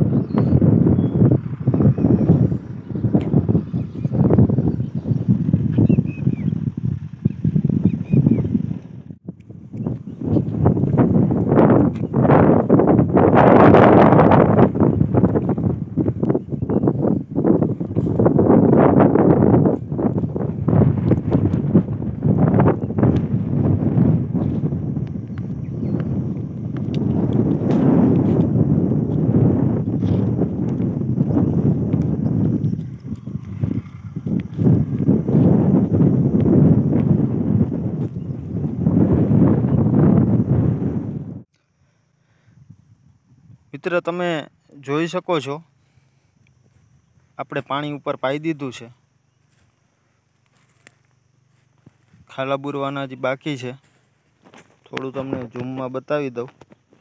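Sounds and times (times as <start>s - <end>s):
wind buffeting microphone: 0.0s - 41.5s, 42.5s - 57.0s
crunching clicks: 25.0s - 31.3s, 54.4s - 57.0s.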